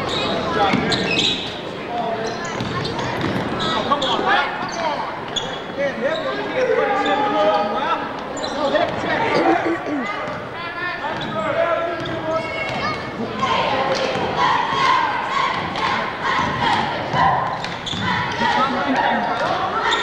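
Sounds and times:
basketball bouncing on gym floor: 2.6s - 3.4s
people shouting and calling: 12.4s - 20.0s.

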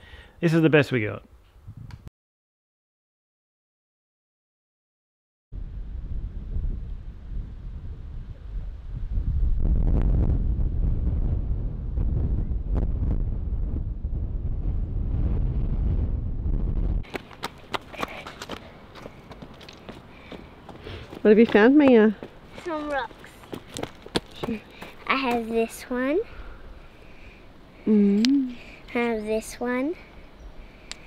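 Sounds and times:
wind buffeting microphone: 1.6s - 2.1s, 5.6s - 26.9s
footsteps on loose river stones: 17.1s - 25.5s.

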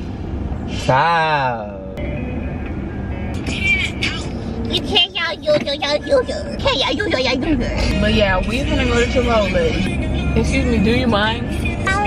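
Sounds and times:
song on car stereo: 2.0s - 12.0s.

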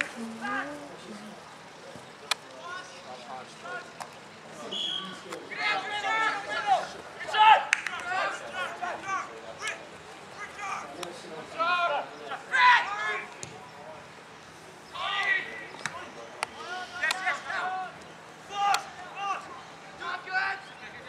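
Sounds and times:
voices calling and shouting: 0.0s - 21.0s.

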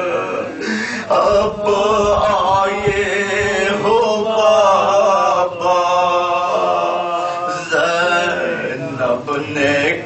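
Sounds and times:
man chanting mournful elegy: 0.0s - 10.0s.

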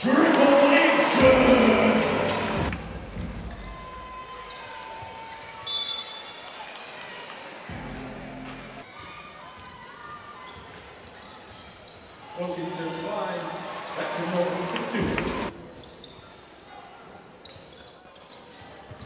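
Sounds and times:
faint arena background: 0.0s - 19.0s.

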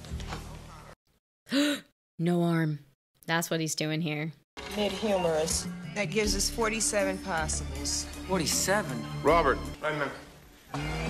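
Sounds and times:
woman gasping: 1.5s - 1.9s
faint dialogue: 2.4s - 10.4s.

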